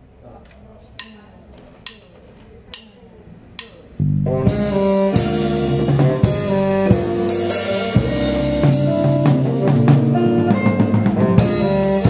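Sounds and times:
drumstick clicks: 0:01.8 - 0:02.1, 0:03.6 - 0:03.8.

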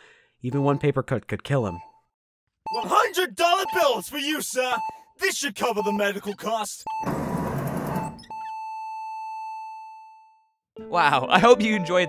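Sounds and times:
heart monitor flatline beep: 0:00.5 - 0:01.0, 0:02.7 - 0:10.3.

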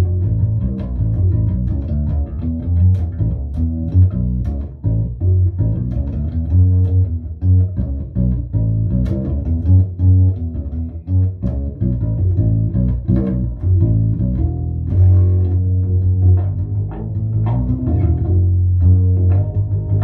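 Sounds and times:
fretless bass plucked low notes: 0:00.0 - 0:20.0
string attack clicks: 0:00.0 - 0:20.0.

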